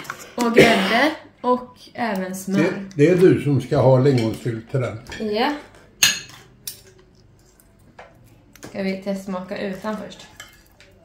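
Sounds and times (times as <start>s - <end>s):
cutlery clinking against dishes: 3.1s - 7.1s, 10.0s - 11.0s.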